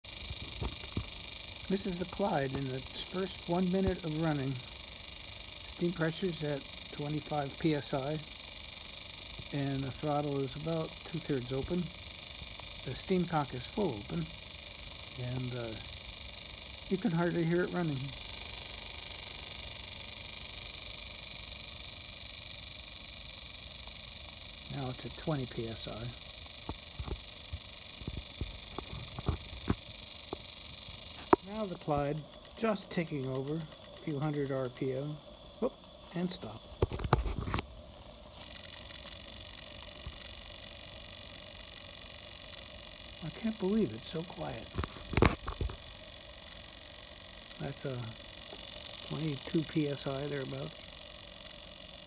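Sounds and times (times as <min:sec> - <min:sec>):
model steam engine beat: 0:00.0 - 0:04.8, 0:05.8 - 0:08.3, 0:09.4 - 0:12.0, 0:12.8 - 0:14.4, 0:16.8 - 0:18.2, 0:24.6 - 0:27.2, 0:28.0 - 0:37.6, 0:43.2 - 0:45.8.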